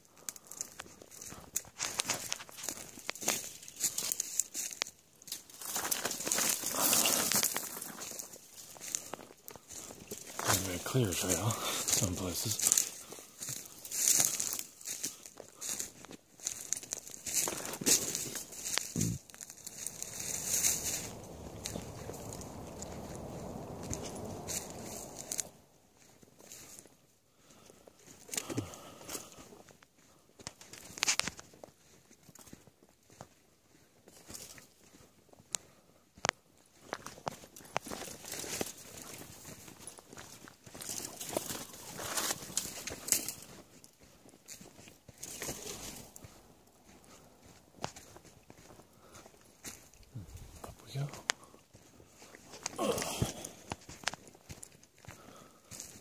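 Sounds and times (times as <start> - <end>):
brush and twigs crackling: 0.0 - 56.0
footsteps on sandy dirt trail: 0.0 - 56.0
steady rustling noise: 1.2 - 27.0.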